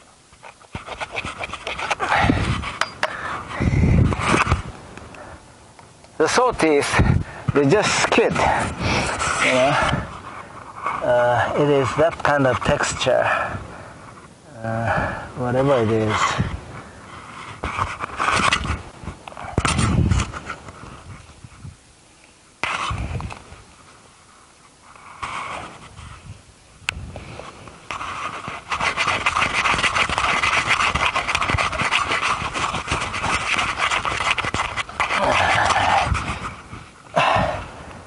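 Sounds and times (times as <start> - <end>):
rustling: 0.0 - 5.2, 5.8 - 13.2, 15.4 - 38.0
hand saw cutting log: 27.9 - 36.0.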